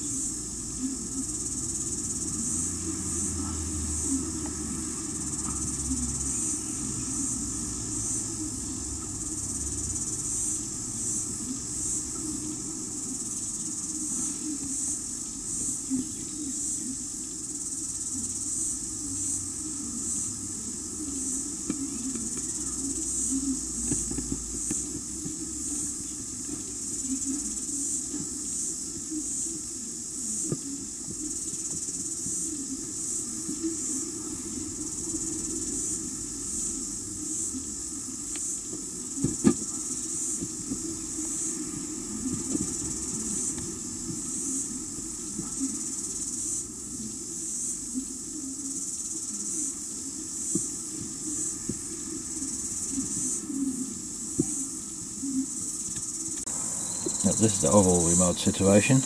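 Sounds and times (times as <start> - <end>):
crickets chirring: 0.0 - 59.0.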